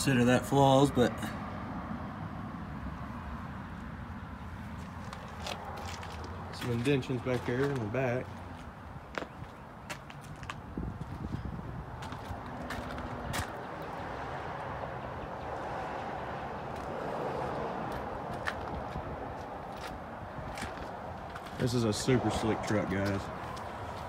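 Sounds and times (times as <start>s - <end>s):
outdoor background noise: 0.0s - 24.0s
footsteps on pavement: 4.6s - 14.0s, 16.7s - 24.0s.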